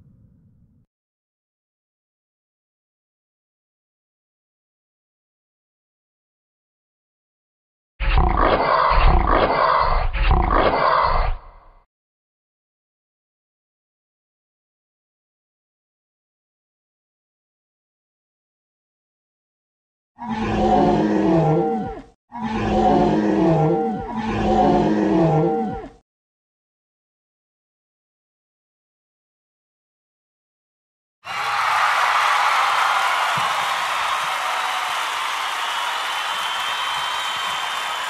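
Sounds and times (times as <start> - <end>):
dinosaur roar: 8.0 - 11.6, 20.2 - 26.0.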